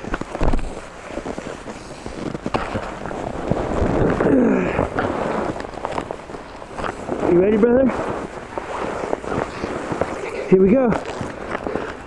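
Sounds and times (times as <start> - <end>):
camera rubbing against clothing: 0.0 - 12.0.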